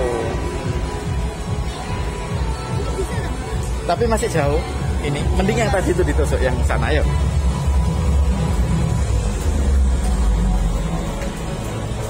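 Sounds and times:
steady low rumble: 0:00.0 - 0:03.9
arcade background music: 0:00.0 - 0:12.0.

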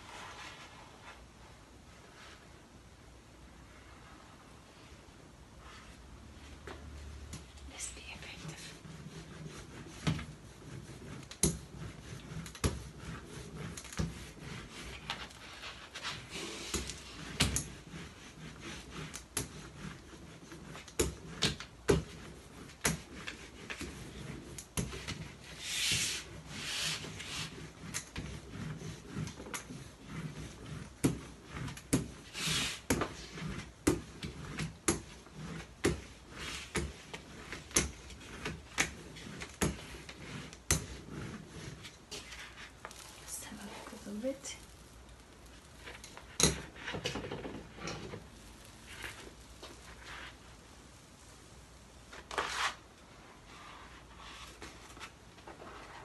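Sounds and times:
brayer rubbing over paper: 0:00.0 - 0:02.6, 0:07.8 - 0:51.3, 0:52.1 - 0:56.0.

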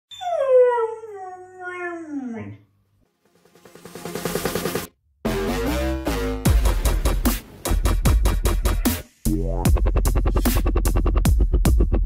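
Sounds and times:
puppy howling: 0:00.2 - 0:02.6.

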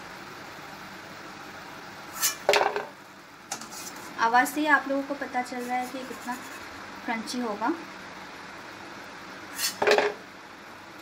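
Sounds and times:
frying oil hissing: 0:02.0 - 0:02.8, 0:03.6 - 0:07.7, 0:09.2 - 0:10.4
spatula scraping metal pan: 0:02.2 - 0:02.5, 0:05.6 - 0:06.7
item dropped into plastic bowl: 0:02.5 - 0:02.9, 0:09.8 - 0:10.2.

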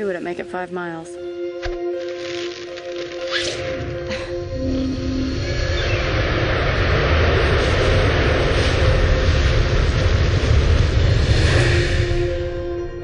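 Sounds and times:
jet aircraft roaring overhead: 0:04.0 - 0:13.0.

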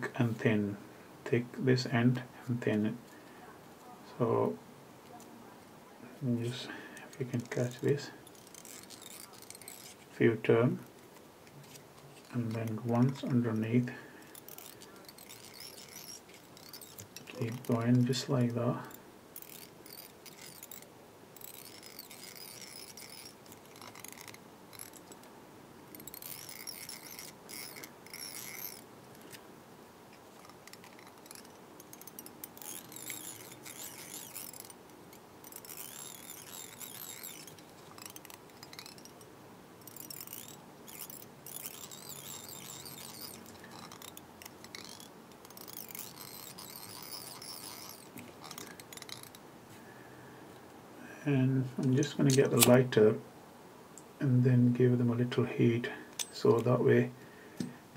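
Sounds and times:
fingers rustling and scraping thread: 0:05.0 - 0:29.5, 0:30.1 - 0:49.9.

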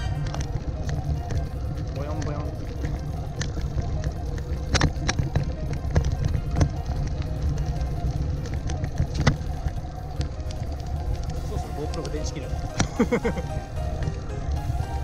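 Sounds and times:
bicycle clicks and rattles: 0:00.0 - 0:14.8
background music: 0:00.0 - 0:15.0.

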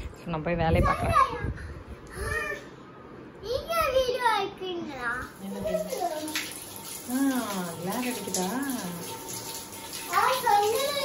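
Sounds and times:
shower water spraying: 0:05.2 - 0:11.0.

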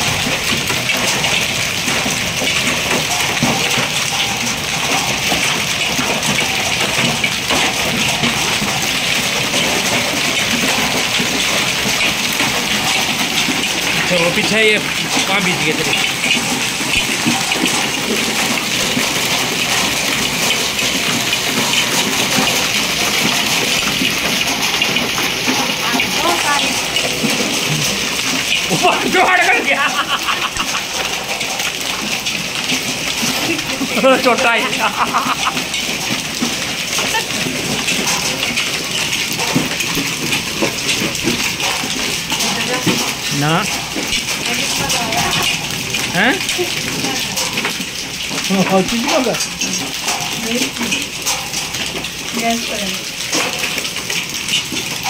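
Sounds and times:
heavy rain and hail on pavement: 0:00.0 - 0:55.0.

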